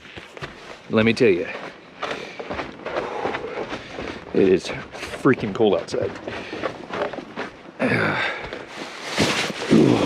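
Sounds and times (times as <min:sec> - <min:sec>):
footsteps crunching in snow: 0:00.0 - 0:10.0
rustling: 0:08.6 - 0:10.0.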